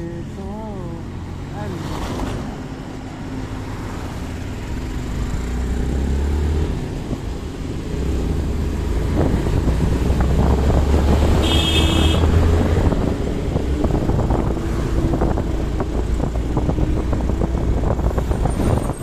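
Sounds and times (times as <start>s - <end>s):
wind buffeting microphone: 6.7s - 11.4s, 12.2s - 19.0s.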